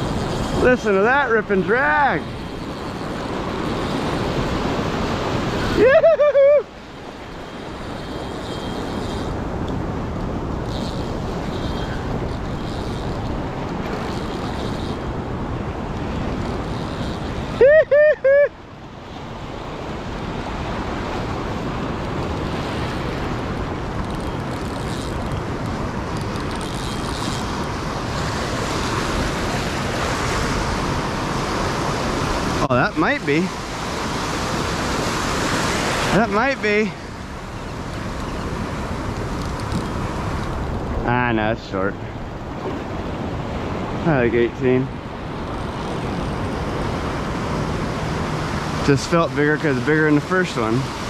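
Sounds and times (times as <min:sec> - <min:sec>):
wind buffeting microphone: 0:00.0 - 0:17.7
ocean surf breaking: 0:00.0 - 0:51.0.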